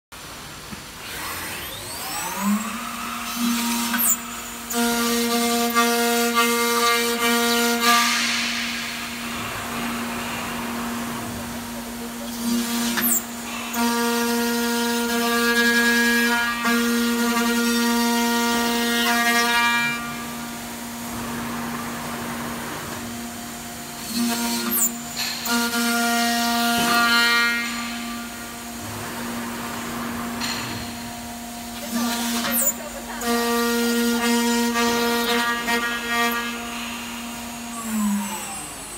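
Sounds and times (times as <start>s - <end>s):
cutter machining aluminum: 0.2s - 38.9s
machine spindle whine: 0.2s - 38.9s.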